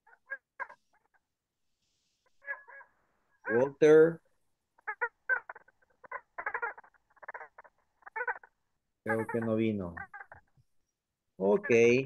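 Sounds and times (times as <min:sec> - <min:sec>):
bird calling: 0:01.9 - 0:12.0.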